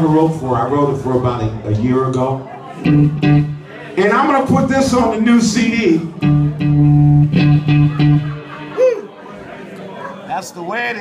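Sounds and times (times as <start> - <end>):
electric and bass guitar notes: 2.8 - 3.7, 4.5 - 8.8.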